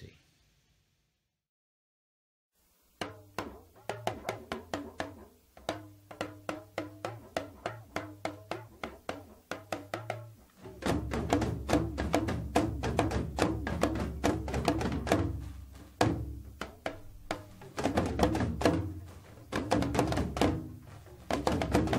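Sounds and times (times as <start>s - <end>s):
talking drums playing: 3.0s - 21.9s.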